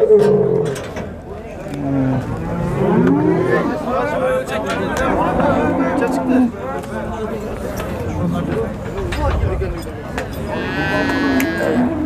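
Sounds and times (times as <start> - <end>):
men's voices: 0.6 - 12.0
cattle mooing: 1.8 - 3.8, 10.5 - 12.0.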